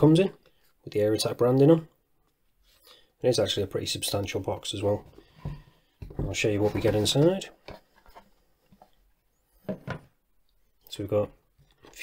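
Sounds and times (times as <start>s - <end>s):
faint handling clicks and rubs: 6.4s - 9.3s.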